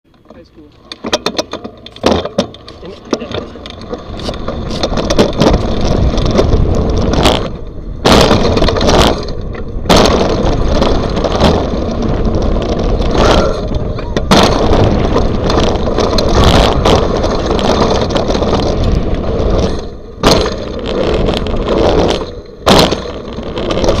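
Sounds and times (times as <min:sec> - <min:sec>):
bike rattling and knocking: 0:00.1 - 0:24.0
tyres on dirt: 0:00.1 - 0:24.0
wind on microphone: 0:03.0 - 0:24.0.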